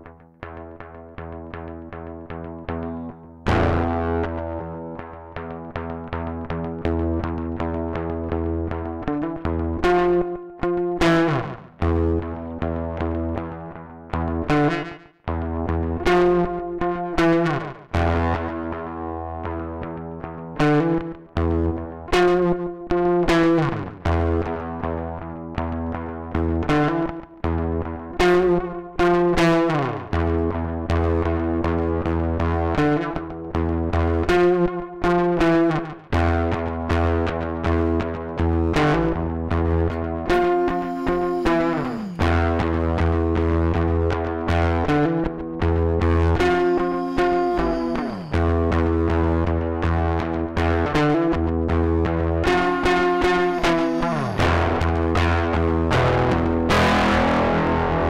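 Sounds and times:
distorted electric guitar chords: 0:00.0 - 0:58.0.

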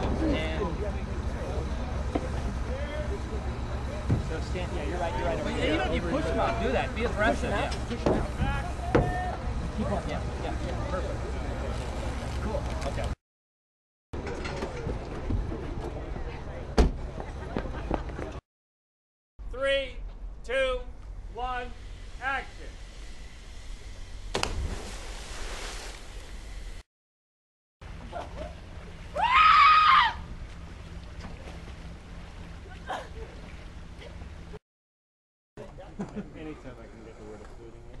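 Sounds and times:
voices and bustle: 0:00.0 - 0:13.1
loud thump on a car: 0:16.8 - 0:17.0
woman screaming: 0:29.2 - 0:30.2.

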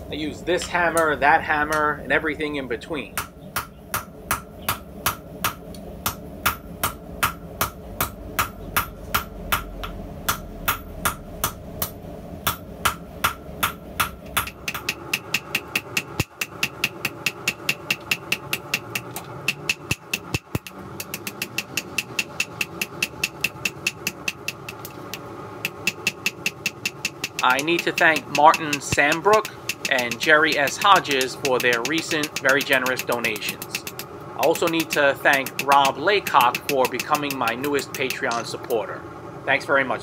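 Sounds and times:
steady hum: 0:00.0 - 0:40.0
hammer striking steel on anvil: 0:03.2 - 0:24.9, 0:25.6 - 0:38.5.

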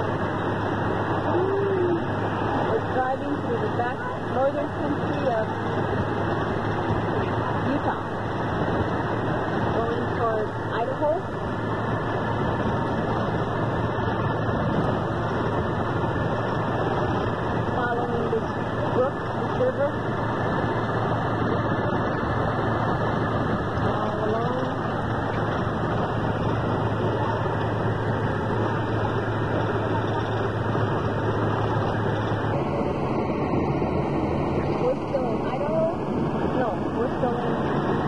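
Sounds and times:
low even hum: 0:00.0 - 0:38.0
road and engine noise: 0:00.0 - 0:38.0.

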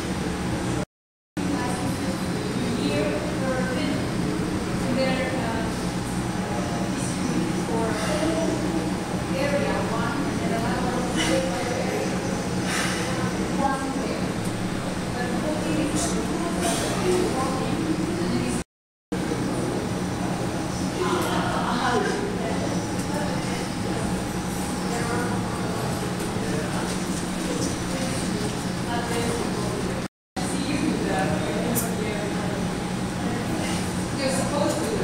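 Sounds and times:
steady low hum: 0:01.4 - 0:18.6, 0:19.2 - 0:35.0.

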